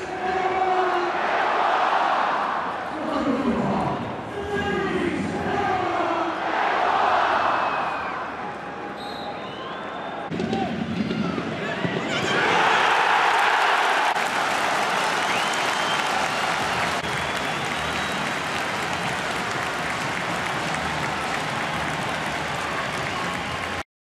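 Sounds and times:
stadium crowd cheering: 0:00.0 - 0:02.9, 0:04.5 - 0:23.8
crowd clapping: 0:12.9 - 0:23.8.

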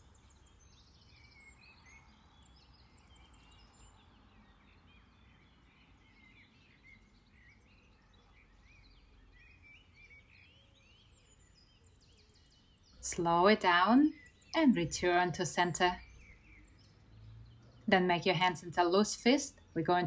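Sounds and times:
songbirds chirping and trilling: 0:00.0 - 0:20.0.

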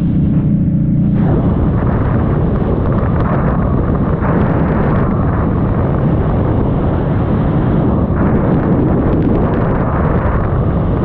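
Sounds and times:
motorcycle engine: 0:00.0 - 0:11.0
wind buffeting microphone: 0:00.0 - 0:11.0.

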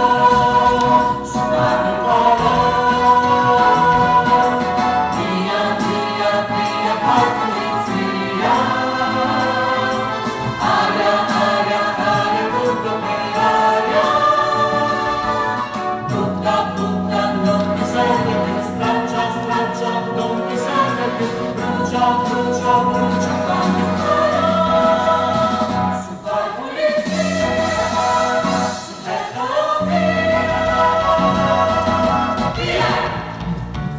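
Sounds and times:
chorus singing: 0:00.0 - 0:33.8
instrumental accompaniment: 0:00.0 - 0:33.9.

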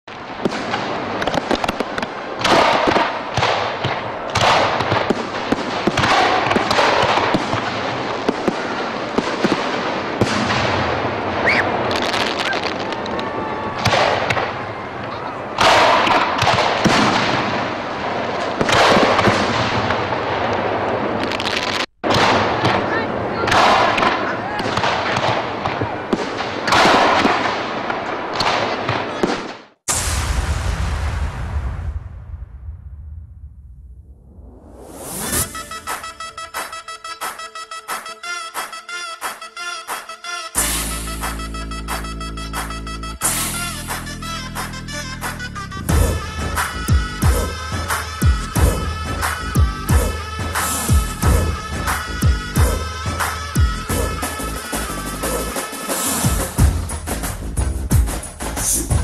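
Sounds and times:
fireworks cracking: 0:00.0 - 0:59.0
fireworks crackling bursts: 0:00.1 - 0:32.5, 0:34.5 - 0:59.0
small firework pops: 0:00.4 - 0:08.6, 0:11.4 - 0:14.5.

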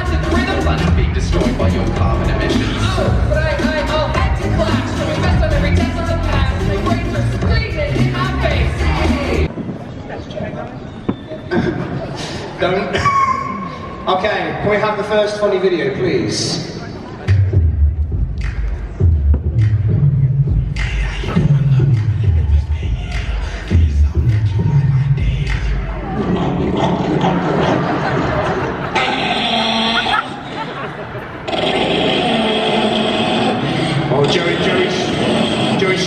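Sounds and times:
rhythmic low pulses: 0:00.0 - 0:09.5, 0:17.2 - 0:30.7
mix of voices and music: 0:00.0 - 0:10.5, 0:11.5 - 0:30.4, 0:31.4 - 0:36.0
voice over loudspeakers: 0:31.5 - 0:36.0.

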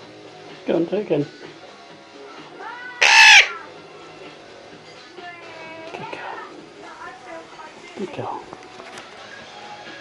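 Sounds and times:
parrot squawking: 0:03.0 - 0:03.7.

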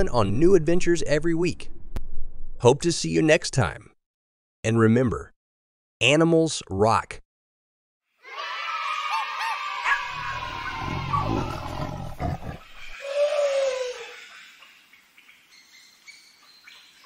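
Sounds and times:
cartoon animal sound effects: 0:08.3 - 0:11.9.

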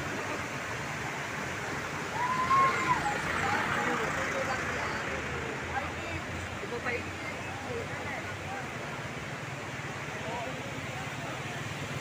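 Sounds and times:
rushing outdoor background: 0:00.0 - 0:12.0.

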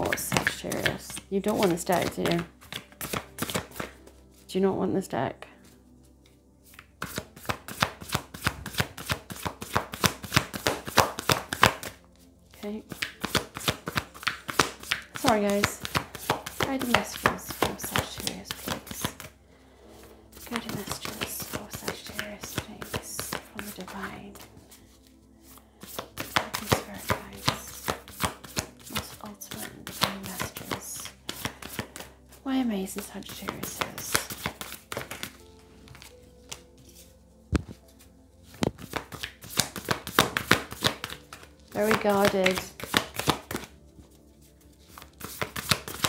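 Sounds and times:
cards being shuffled by hand: 0:00.0 - 0:04.4, 0:06.6 - 0:19.3, 0:20.0 - 0:46.0.

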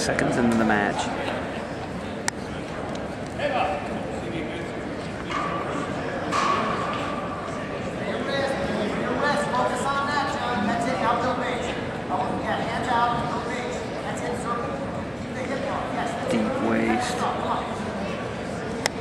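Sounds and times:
crowd noise: 0:00.0 - 0:19.0.

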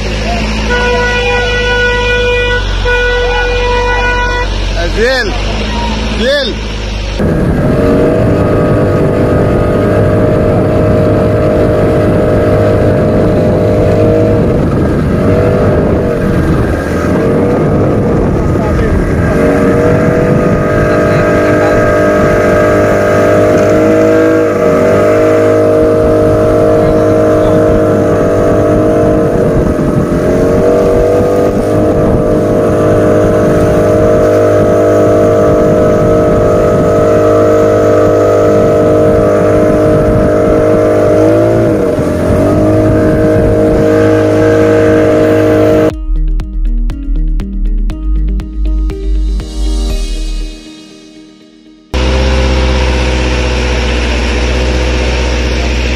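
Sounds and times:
motorboat engine droning: 0:00.0 - 0:46.8, 0:48.0 - 0:55.9.

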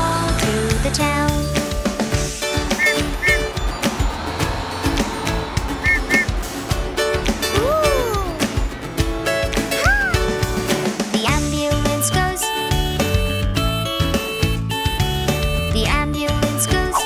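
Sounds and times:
upbeat children's backing music: 0:00.0 - 0:17.0
rising and falling swoops: 0:02.4 - 0:09.0.

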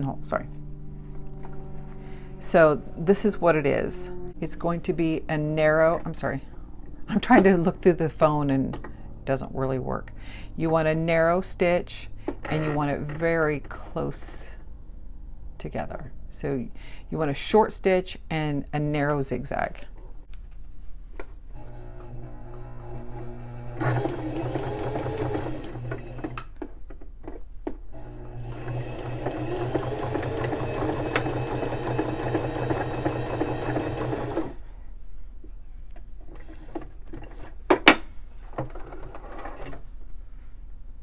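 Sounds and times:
electric sewing machine stitching: 0:21.5 - 0:26.5, 0:27.9 - 0:34.6.

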